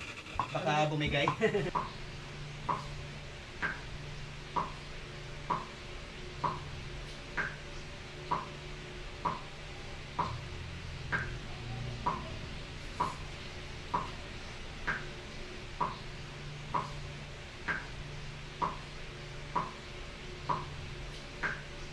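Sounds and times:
steady ticking: 0.0s - 21.8s
low steady hum: 0.0s - 21.9s.

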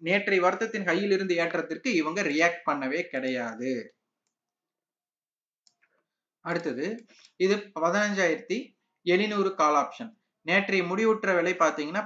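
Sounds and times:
man talking: 6.4s - 12.0s.

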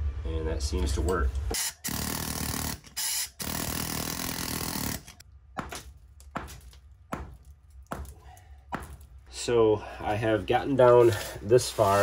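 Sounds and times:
power tool on concrete: 1.6s - 5.2s
concrete rubble knocks and scrapes: 5.6s - 9.3s.

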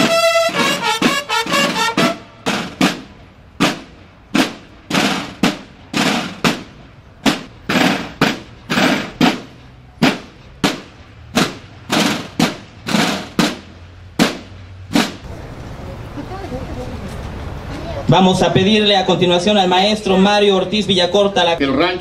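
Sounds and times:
snare drums beating: 0.0s - 15.2s.

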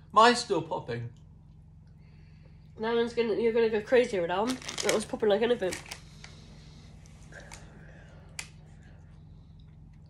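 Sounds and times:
popping candy crackling: 4.4s - 6.1s.

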